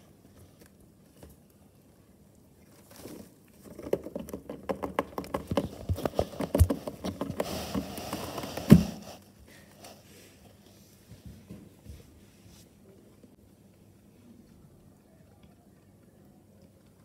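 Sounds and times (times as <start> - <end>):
rabbit rustling in dry hay: 5.7 - 11.3.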